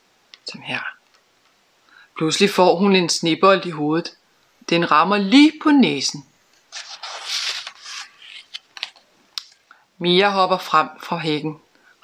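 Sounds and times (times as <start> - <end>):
paper pages rustling: 6.5 - 9.1.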